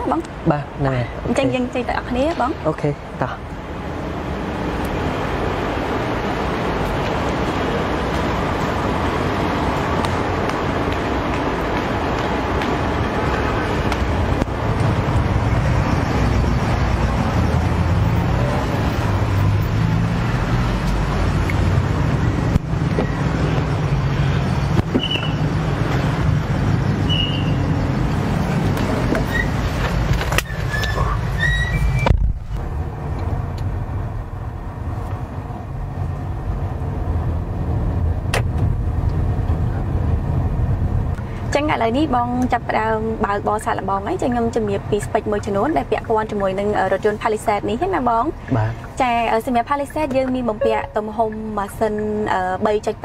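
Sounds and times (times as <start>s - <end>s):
road traffic: 0.0s - 53.0s
deep vehicle rumble: 5.0s - 53.0s.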